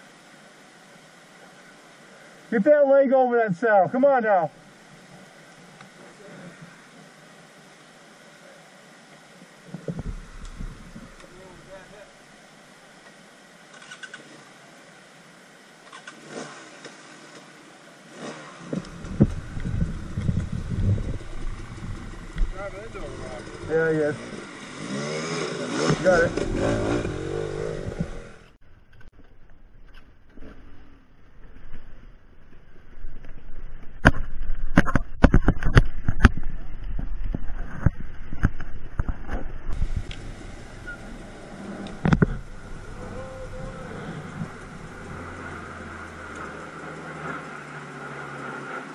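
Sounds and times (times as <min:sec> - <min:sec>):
bike splashing through creek: 0:14.2 - 0:28.6, 0:39.7 - 0:48.9
dirt bike engine revving: 0:15.9 - 0:28.6, 0:39.7 - 0:48.9.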